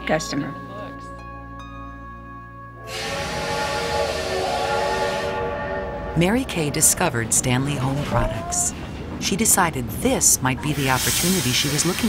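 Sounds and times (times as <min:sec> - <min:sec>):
soft music: 0:00.0 - 0:07.9
steady whistle-like chord: 0:02.6 - 0:06.4
steam locomotive hissing: 0:02.8 - 0:06.0, 0:10.6 - 0:12.0.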